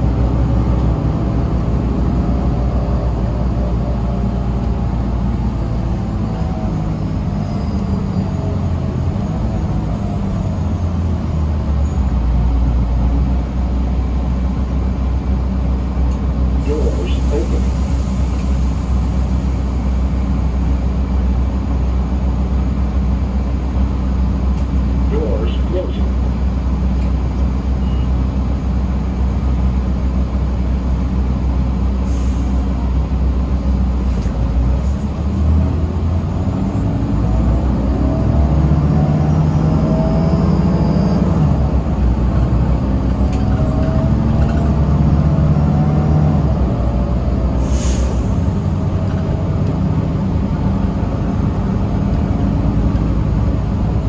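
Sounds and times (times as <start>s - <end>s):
bus engine and road drone: 0.0s - 54.0s
air brake hiss: 32.0s - 32.7s, 47.6s - 48.4s.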